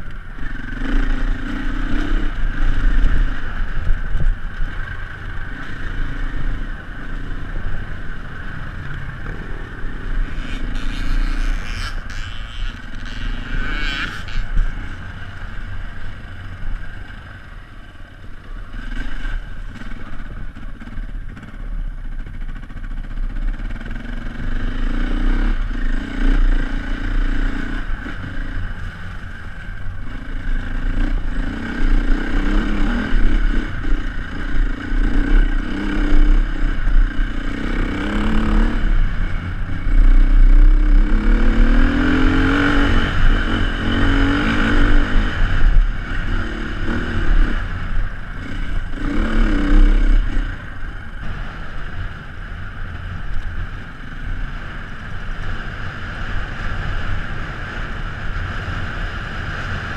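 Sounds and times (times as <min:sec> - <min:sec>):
dirt bike engine revving: 0:00.3 - 0:17.4, 0:22.2 - 0:52.3.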